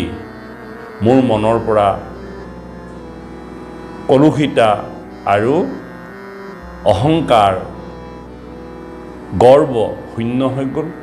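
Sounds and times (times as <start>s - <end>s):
drone-like background music: 0.0s - 11.0s.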